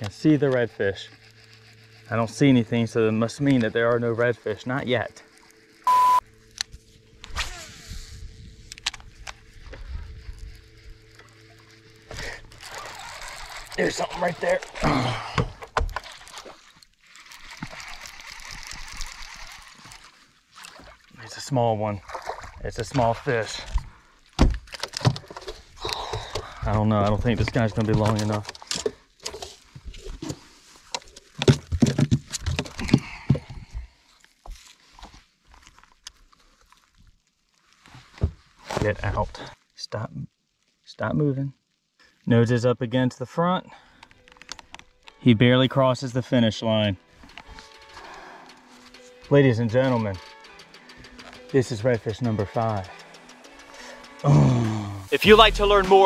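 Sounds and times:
trolling motor hum: 0.0 - 20.4, 47.0 - 56.0
reel spool whirring: 0.0 - 20.5, 46.4 - 55.1.

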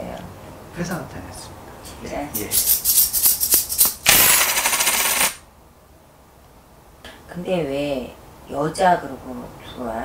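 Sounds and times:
coins clattering on a table: 2.5 - 5.4.

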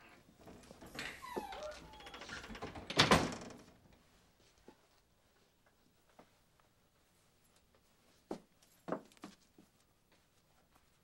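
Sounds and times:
door hinges creaking: 0.4 - 3.8
door shutting with thud: 2.4 - 3.6.

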